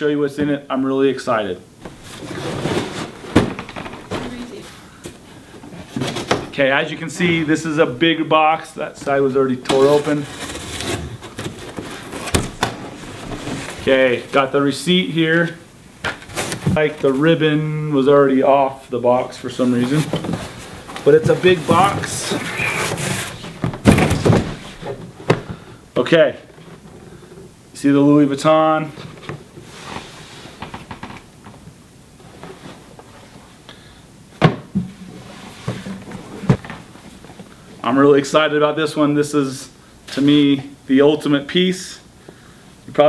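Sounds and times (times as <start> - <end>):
cardboard scraping and sliding: 1.9 - 4.6, 9.7 - 14.2, 19.5 - 25.0
cardboard box thumping down: 23.5 - 25.5.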